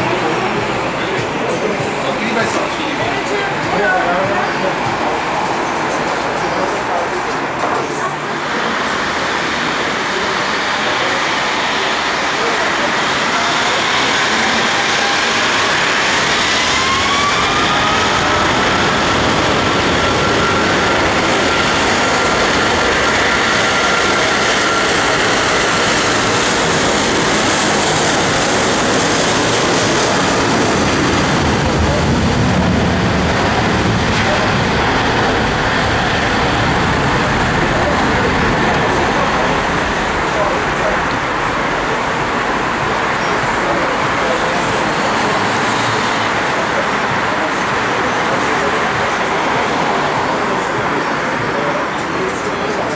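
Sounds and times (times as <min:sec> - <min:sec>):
deep jet rumble: 0:00.0 - 0:52.9
jet engine whine: 0:00.0 - 0:52.9
loud rushing noise: 0:00.0 - 0:52.9.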